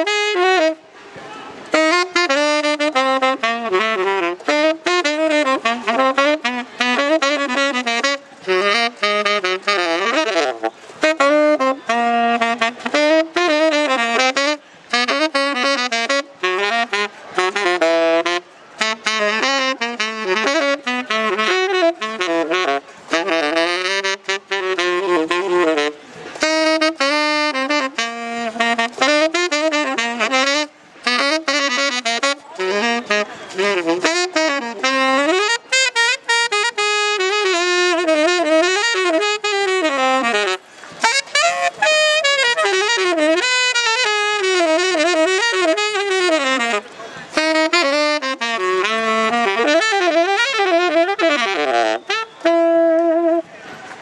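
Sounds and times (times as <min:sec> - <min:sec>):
tenor saxophone improvising jazz: 0:00.0 - 0:54.0.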